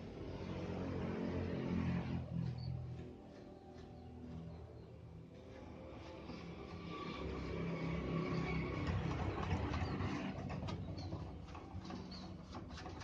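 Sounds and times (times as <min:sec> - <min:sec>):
motor vehicle passing: 0:00.0 - 0:13.0.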